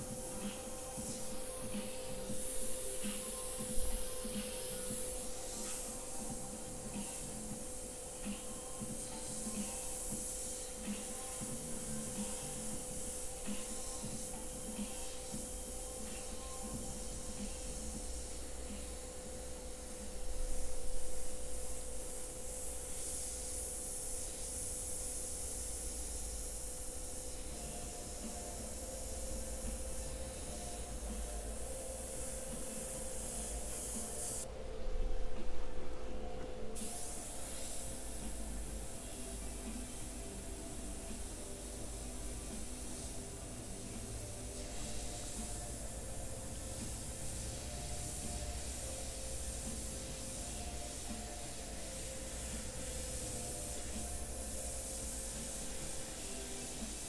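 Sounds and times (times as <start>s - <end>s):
airbrush spraying hiss: 0.0s - 34.5s, 36.6s - 57.0s
steady hum: 0.0s - 57.0s.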